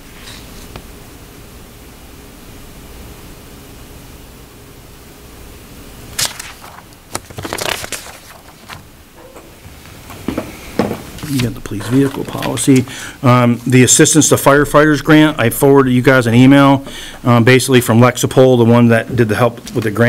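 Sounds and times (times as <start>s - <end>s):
low room hum: 0.0s - 20.0s
papers rustling: 6.1s - 17.8s, 19.3s - 20.0s.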